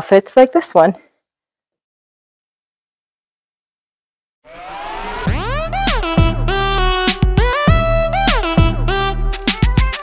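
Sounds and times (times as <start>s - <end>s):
electronic music with synth sweeps: 4.5s - 10.0s.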